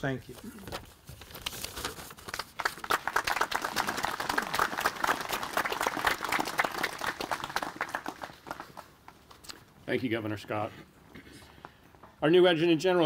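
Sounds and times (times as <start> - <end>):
audience applauding: 2.3 - 9.2.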